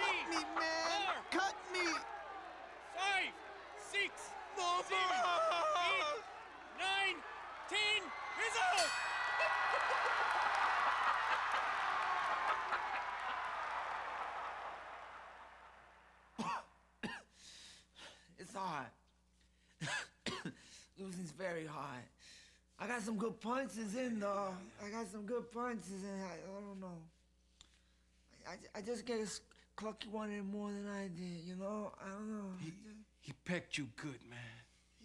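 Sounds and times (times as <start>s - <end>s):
man shouting calls: 0.0s - 9.0s
crowd cheering and applauding: 0.0s - 16.5s.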